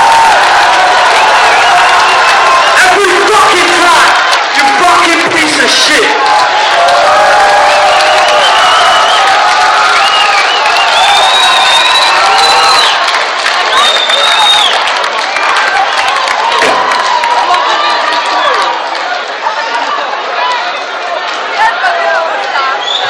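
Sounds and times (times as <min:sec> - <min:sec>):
crowd cheering and yelling: 0:00.0 - 0:23.0.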